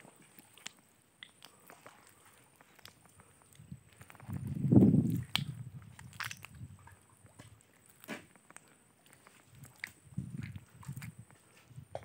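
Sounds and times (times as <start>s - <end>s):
wet mud squelching: 0.0s - 12.0s.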